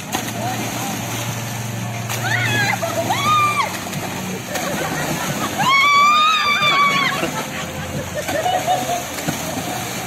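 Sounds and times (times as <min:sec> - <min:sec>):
pool water splashing: 0:00.0 - 0:10.0.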